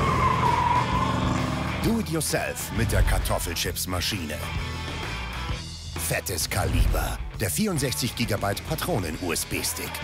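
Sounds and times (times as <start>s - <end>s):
car tyres squealing: 0.0s - 1.8s
car engine running: 0.0s - 2.0s.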